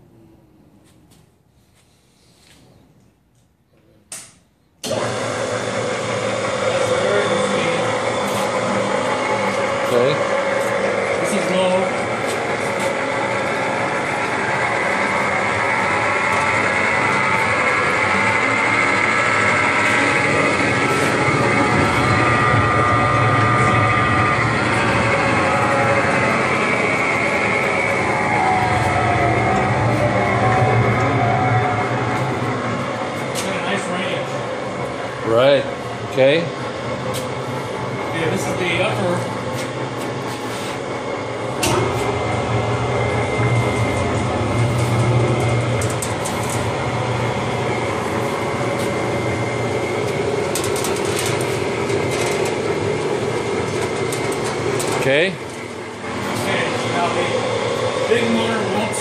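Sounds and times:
electric motors humming and whining: 4.8 - 59.0.

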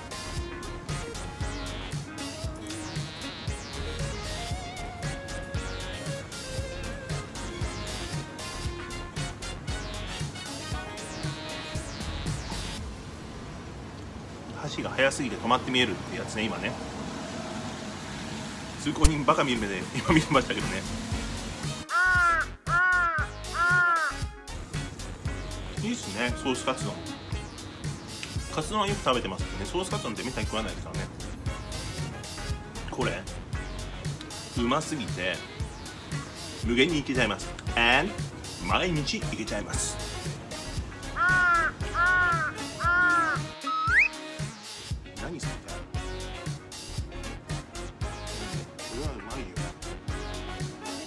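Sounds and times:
background music with beat: 0.0 - 12.8, 19.7 - 51.0
crow cawing sound effect: 21.8 - 24.3, 41.0 - 44.1
short rising whistle: 43.6 - 44.3.

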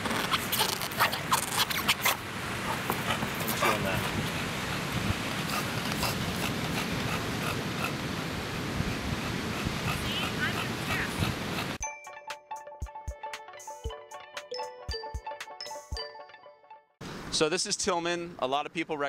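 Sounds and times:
dog scraping rubber pad: 0.0 - 4.2
beach background noise: 0.0 - 11.8, 17.0 - 19.0
faint voices: 9.9 - 11.4.

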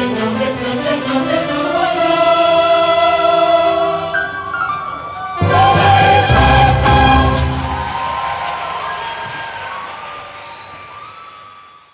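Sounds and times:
choir and band final chord: 5.4 - 8.2.

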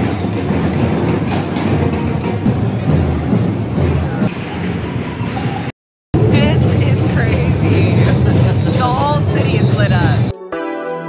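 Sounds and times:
snare drums playing: 0.0 - 5.0
crowd voices: 0.0 - 10.4.

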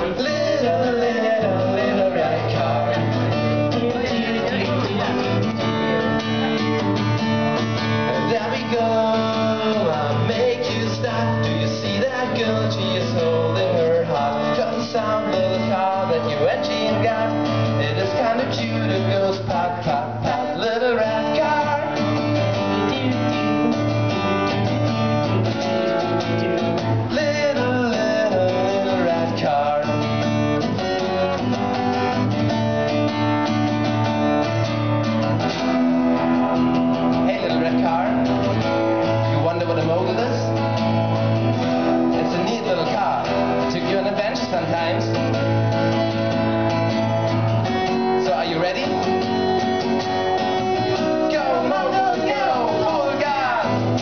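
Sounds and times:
person singing: 0.0 - 6.9, 7.6 - 31.5, 50.6 - 54.0
acoustic guitar strumming: 0.0 - 54.0.

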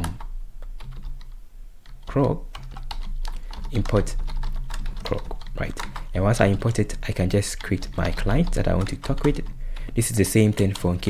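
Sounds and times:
computer keyboard key clicks: 0.0 - 6.8.

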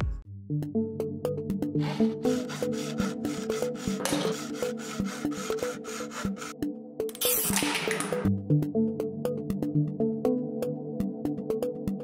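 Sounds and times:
knife scraping aluminium can: 1.8 - 8.2.

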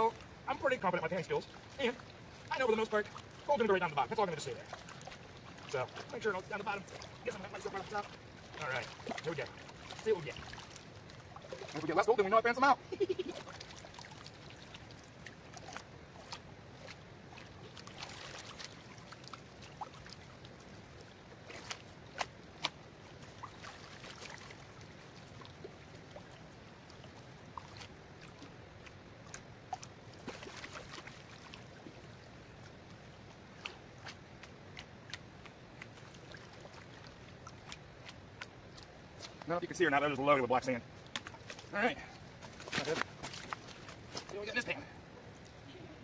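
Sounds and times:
water sloshing in a pan: 0.0 - 32.8.

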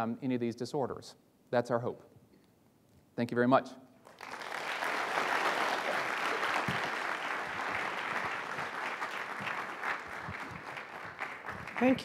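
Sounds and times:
audience applauding: 4.1 - 12.0.

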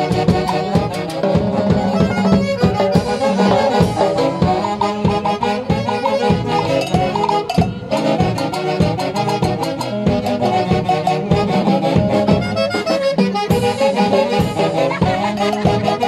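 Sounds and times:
live band dance music: 0.0 - 16.0.

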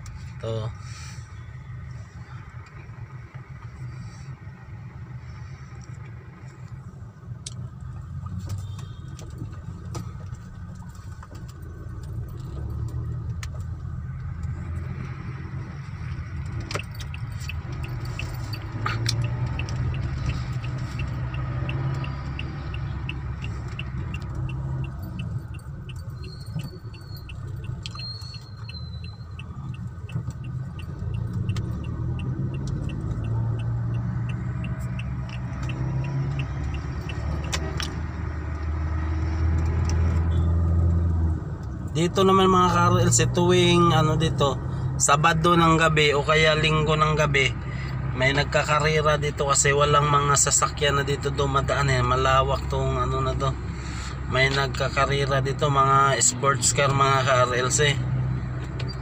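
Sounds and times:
car engine and road rumble: 0.0 - 59.0
light regular ticking: 5.7 - 43.2.

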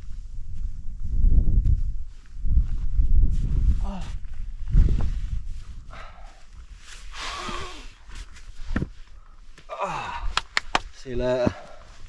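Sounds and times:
person breathing hard: 5.8 - 8.1.

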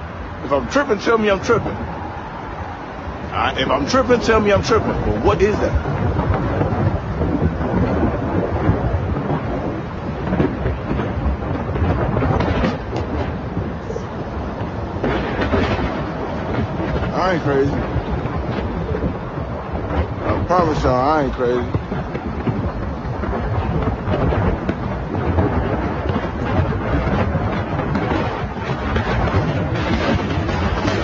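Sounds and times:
loud low rumble: 0.0 - 31.0
noisy hiss: 0.0 - 31.0.

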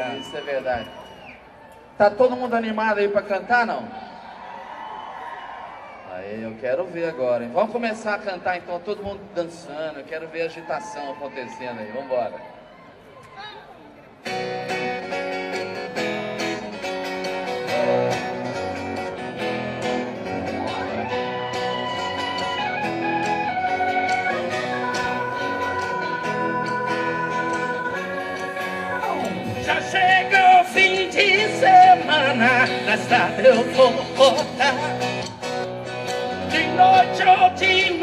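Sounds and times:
live band playing instrumental: 14.3 - 38.0.

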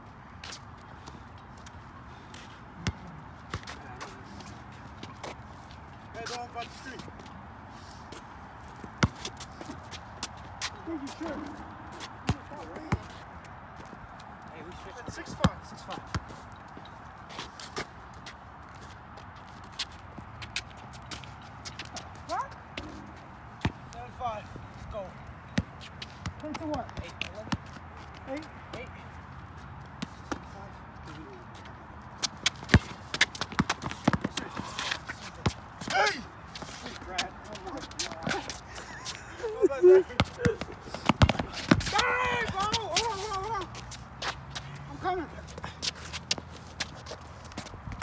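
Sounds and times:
sneakers scuffing: 0.4 - 23.9, 30.0 - 48.0
basketball bouncing on concrete: 8.9 - 9.4, 12.2 - 13.2, 32.2 - 34.8, 40.1 - 43.6.

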